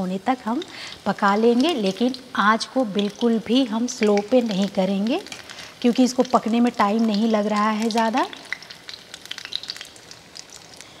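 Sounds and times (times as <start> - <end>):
fritters sizzling in oil: 0.0 - 11.0.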